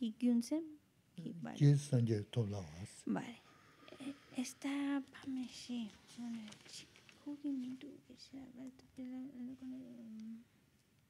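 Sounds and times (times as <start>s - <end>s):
person humming: 1.6s - 2.9s.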